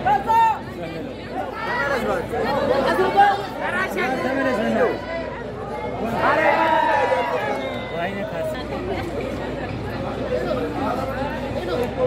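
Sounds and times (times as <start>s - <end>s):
people talking and calling out: 0.0s - 12.0s.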